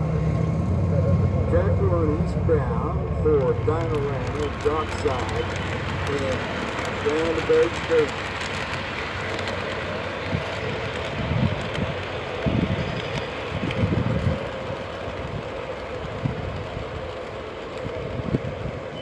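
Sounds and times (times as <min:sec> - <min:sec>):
model train wheels rumbling: 0:00.0 - 0:19.0.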